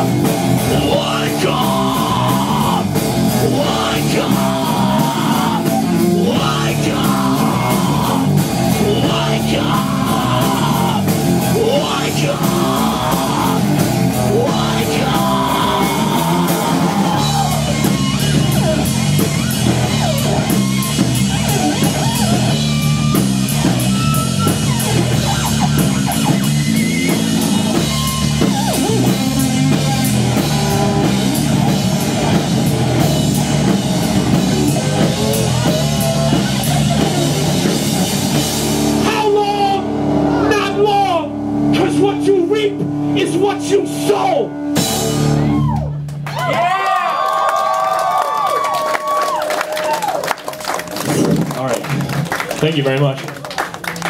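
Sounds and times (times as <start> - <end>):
drum kit: 0.0 - 46.8
electric guitar: 0.0 - 52.6
bass guitar: 0.0 - 54.0.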